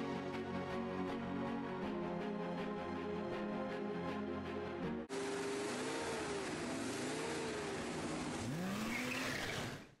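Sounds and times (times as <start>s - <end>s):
car engine revving: 5.1s - 10.0s.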